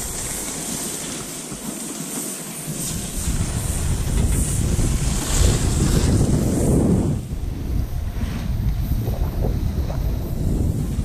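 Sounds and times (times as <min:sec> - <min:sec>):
wind buffeting microphone: 0:02.7 - 0:11.0.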